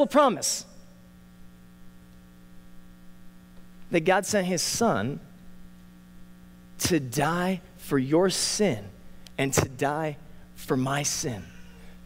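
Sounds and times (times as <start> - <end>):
electrical hum from sound system: 0.0 - 12.0
man's voice: 3.9 - 5.2, 6.8 - 11.8.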